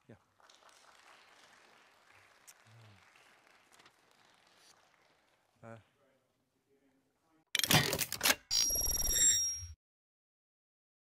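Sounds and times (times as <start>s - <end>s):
faint audience applause: 0.0s - 5.8s.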